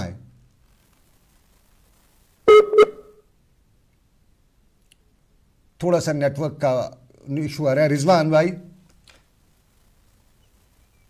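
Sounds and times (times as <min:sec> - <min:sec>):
short electronic beeps: 0:02.5 - 0:03.2.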